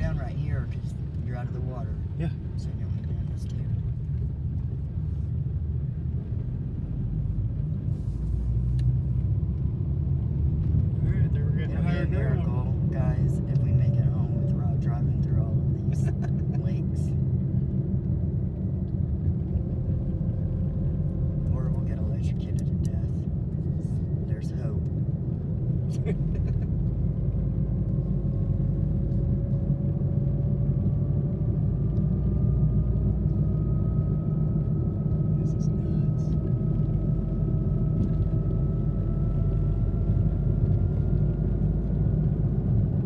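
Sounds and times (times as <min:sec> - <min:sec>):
car engine and tyres rumbling: 0:00.0 - 0:43.0.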